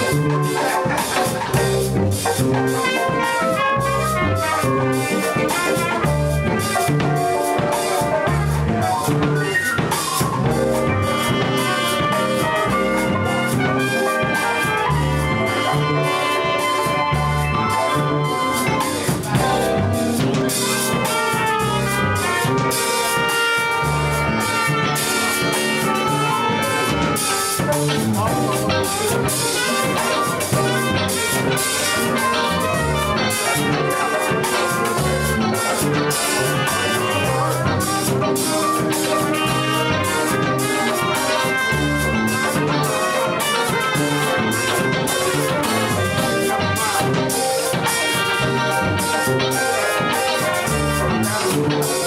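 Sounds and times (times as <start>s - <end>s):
drum kit with cymbals: 0.0s - 52.0s
jazz band playing: 0.0s - 52.0s
keyboards: 0.0s - 52.0s
trumpet: 0.0s - 52.0s
walking bass line: 0.0s - 52.0s.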